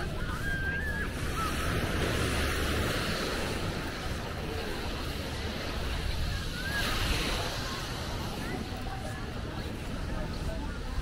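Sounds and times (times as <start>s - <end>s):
small waves washing onto beach: 0.0s - 11.0s.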